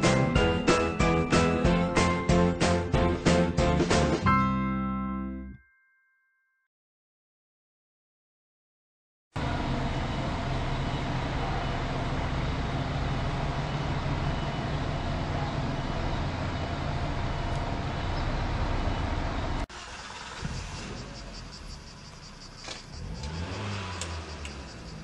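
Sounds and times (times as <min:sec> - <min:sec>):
street background noise: 0:09.4 - 0:25.0
vehicle engine rumble: 0:09.4 - 0:25.0.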